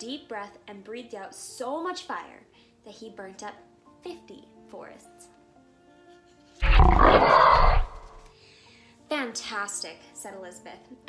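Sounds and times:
soft background music: 0.0s - 11.0s
dragon roar: 6.6s - 8.3s.

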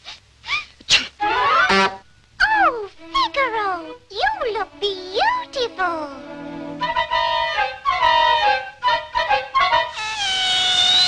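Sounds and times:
kitten sneezing: 0.0s - 1.2s
cartoon music: 1.2s - 11.0s
loud buzzing cry: 9.9s - 11.0s.

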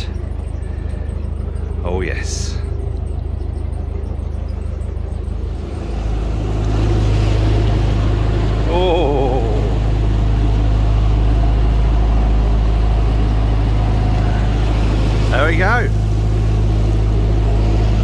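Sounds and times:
boat diesel engine running: 0.0s - 18.0s.

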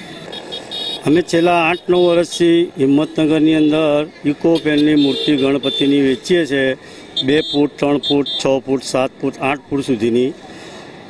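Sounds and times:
street noise: 0.0s - 11.0s
man talking: 1.0s - 10.4s.

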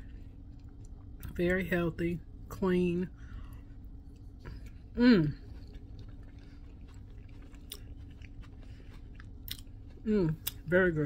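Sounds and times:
person chewing food: 0.0s - 1.4s, 3.3s - 10.7s
low steady hum: 0.0s - 11.0s.

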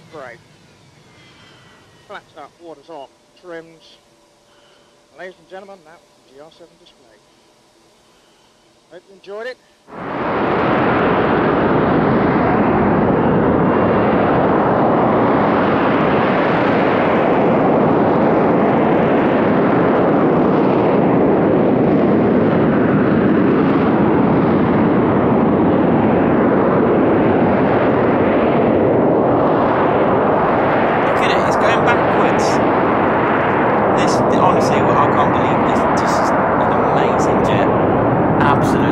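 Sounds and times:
jet engine noise hovering: 0.0s - 38.9s.

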